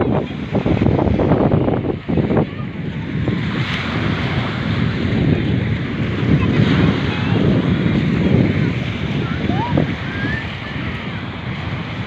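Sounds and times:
waves on the shore: 0:00.0 - 0:12.0
wind buffeting microphone: 0:00.0 - 0:12.0.

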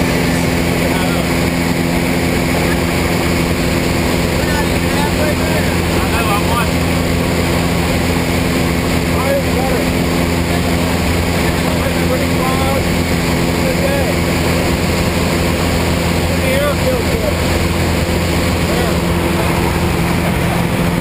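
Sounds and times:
small plane engine droning: 0:00.0 - 0:21.0.

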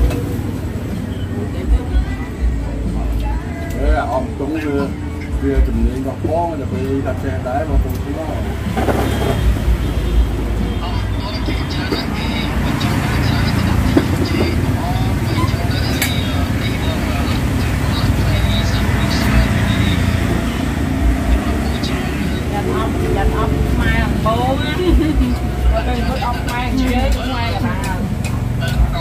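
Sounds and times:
people talking: 0:00.0 - 0:29.0
road traffic rumble: 0:00.0 - 0:29.0.

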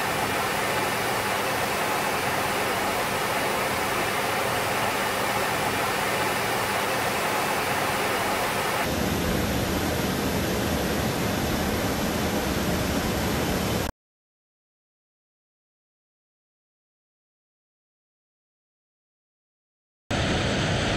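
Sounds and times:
cockpit air and engine noise: 0:00.0 - 0:13.9, 0:20.1 - 0:20.9.

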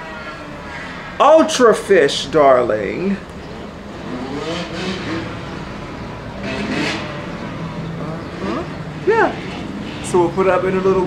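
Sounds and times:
motorcycle engines revving: 0:00.0 - 0:11.0.

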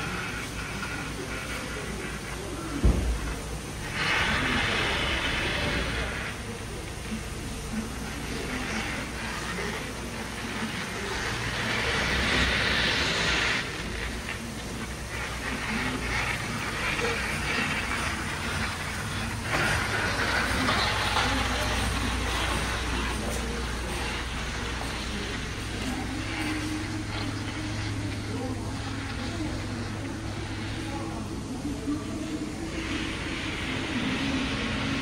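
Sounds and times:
background voices: 0:00.0 - 0:35.0
hissing noise: 0:00.0 - 0:35.0
steady low hum: 0:00.0 - 0:35.0.

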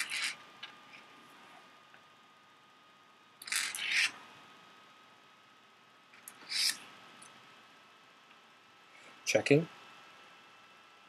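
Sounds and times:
pebbles scraping on paper: 0:00.0 - 0:00.4, 0:03.4 - 0:04.2.

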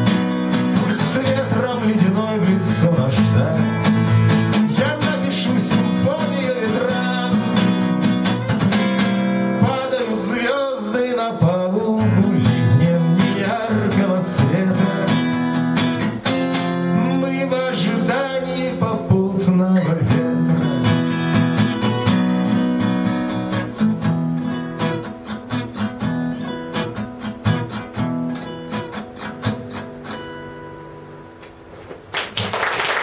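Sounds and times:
acoustic guitar strumming: 0:00.0 - 0:31.8
man singing: 0:00.7 - 0:08.1, 0:09.5 - 0:15.7, 0:16.8 - 0:21.3.

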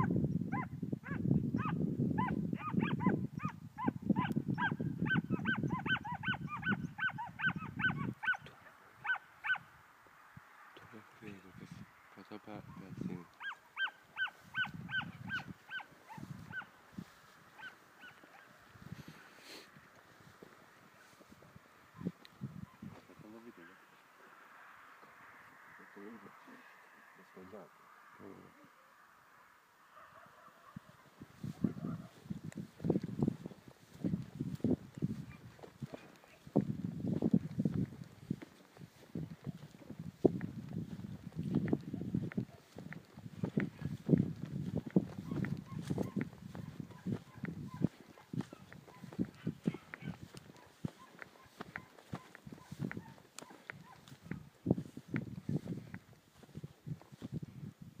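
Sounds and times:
hounds yelping: 0:00.0 - 0:09.7, 0:12.6 - 0:19.6, 0:20.7 - 0:22.9, 0:29.4 - 0:32.3, 0:34.9 - 0:36.7, 0:37.9 - 0:40.0, 0:41.8 - 0:54.5.

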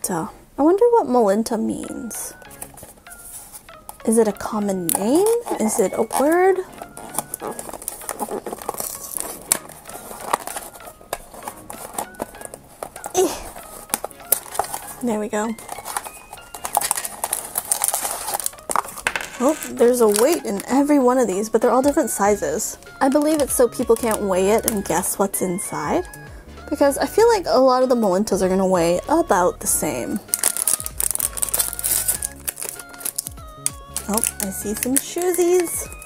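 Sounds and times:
light background music: 0:00.0 - 0:36.0
foil bag crinkling: 0:04.4 - 0:22.1, 0:23.0 - 0:25.2, 0:30.2 - 0:36.0
cardboard box being handled: 0:05.1 - 0:20.4, 0:30.4 - 0:33.3.

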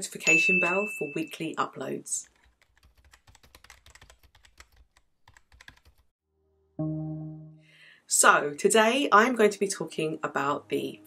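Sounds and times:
faint keyboard clicks: 0:02.2 - 0:06.0
held musical chord: 0:06.4 - 0:07.9.

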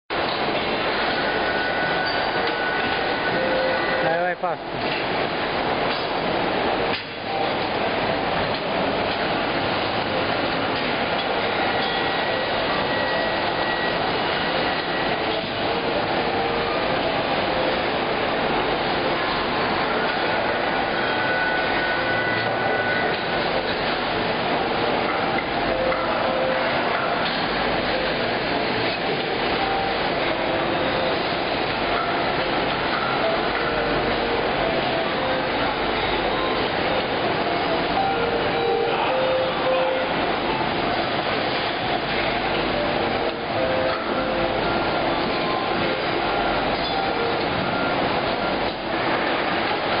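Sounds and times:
factory machinery din: 0:00.1 - 0:50.0.

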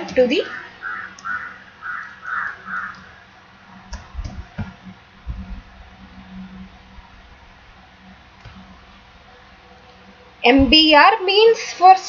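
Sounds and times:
bird calling: 0:00.4 - 0:03.4.

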